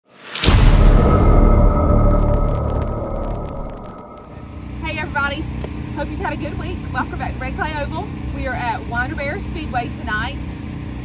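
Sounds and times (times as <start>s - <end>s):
deep boom: 0.4s - 5.6s
low mechanical hum: 4.1s - 11.0s
woman talking: 4.8s - 10.4s.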